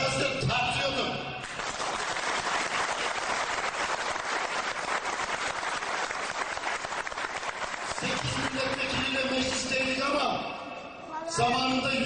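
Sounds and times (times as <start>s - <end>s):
crowd applauding: 1.4s - 9.7s.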